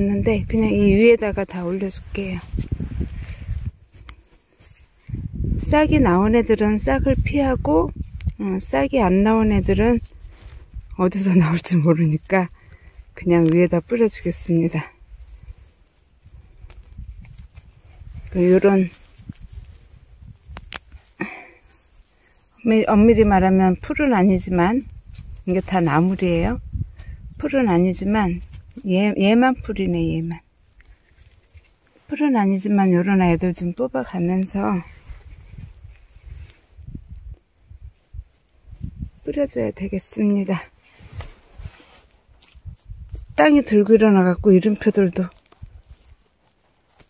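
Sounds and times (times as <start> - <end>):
scraping in garden soil: 7.9 - 47.0.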